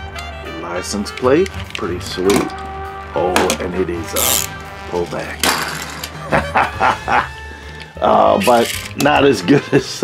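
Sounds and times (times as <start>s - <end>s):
background music: 0.0s - 10.0s
man laughing: 6.2s - 7.4s.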